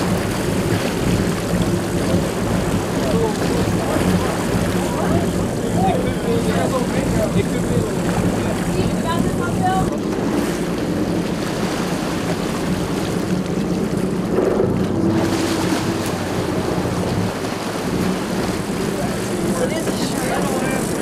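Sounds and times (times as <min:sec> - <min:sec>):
boat engines humming: 0:00.0 - 0:21.0
water rushing along hull: 0:00.0 - 0:21.0.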